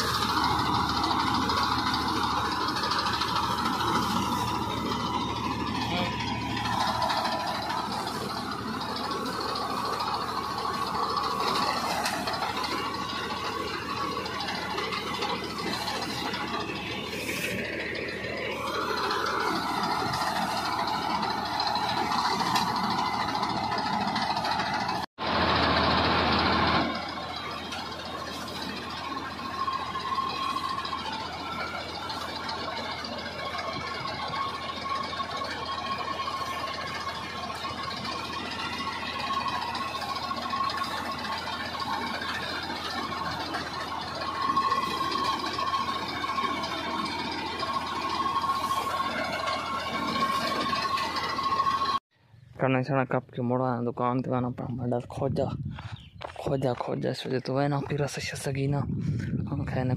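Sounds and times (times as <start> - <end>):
tractor engine running under load: 0.0 - 59.9.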